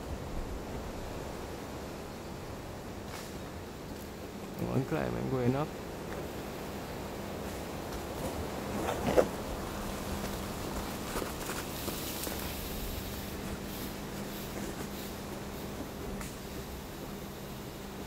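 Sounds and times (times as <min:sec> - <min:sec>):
outdoor background hum: 0:00.0 - 0:18.0
footsteps in undergrowth: 0:07.3 - 0:16.4.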